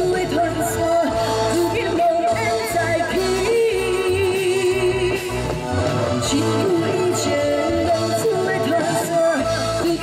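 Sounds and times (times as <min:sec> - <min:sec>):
amplified backing music: 0:00.0 - 0:10.0
woman singing into microphone: 0:00.0 - 0:10.0.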